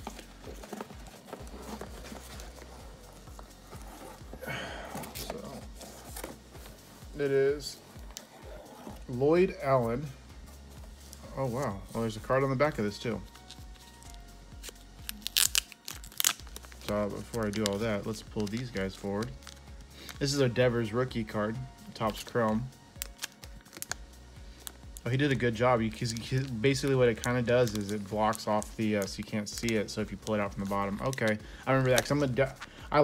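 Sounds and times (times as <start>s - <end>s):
plastic sleeve crinkling and tearing: 0.0s - 4.3s, 13.4s - 20.3s, 22.0s - 24.0s, 26.0s - 32.7s
cardboard and packaging rustling: 0.0s - 20.6s.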